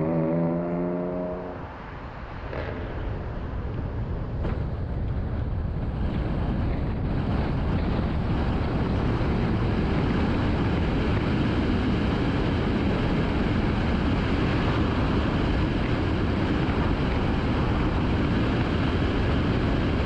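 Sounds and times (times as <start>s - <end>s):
car road and engine rumble: 0.0s - 20.0s.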